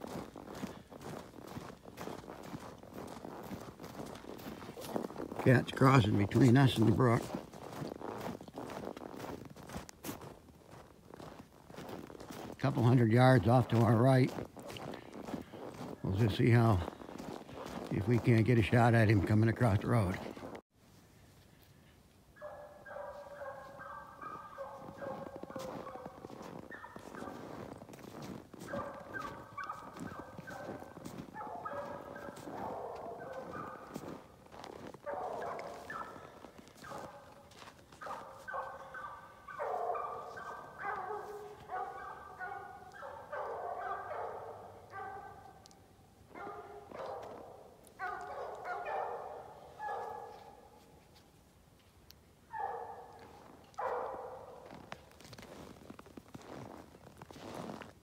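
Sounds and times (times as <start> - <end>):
hounds baying together: 22.4 - 51.0, 52.5 - 55.1.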